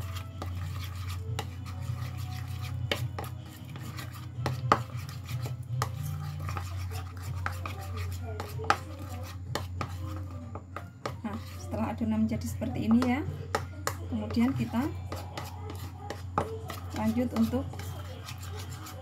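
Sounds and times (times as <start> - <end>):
spoon stirring batter in bowl: 0.0 - 19.0.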